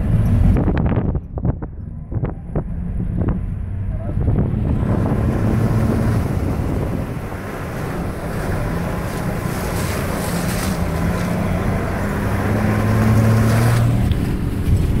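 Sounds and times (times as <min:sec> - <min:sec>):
vehicle engine running: 0:00.0 - 0:15.0
wind buffeting microphone: 0:00.0 - 0:15.0.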